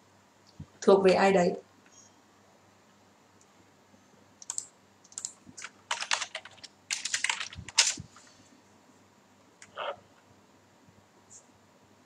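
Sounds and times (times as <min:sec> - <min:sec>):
typing on computer keyboard: 0:04.4 - 0:08.0.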